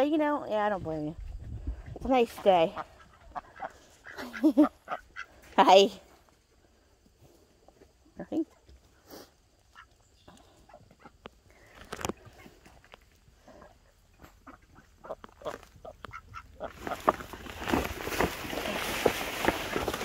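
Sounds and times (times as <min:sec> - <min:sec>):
ducks quacking: 0:02.4 - 0:05.4, 0:13.5 - 0:17.2
rustling: 0:11.5 - 0:20.0.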